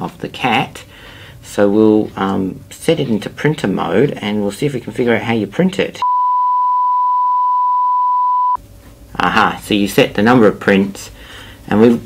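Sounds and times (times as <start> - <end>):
electronic test tone: 6.0 - 8.6.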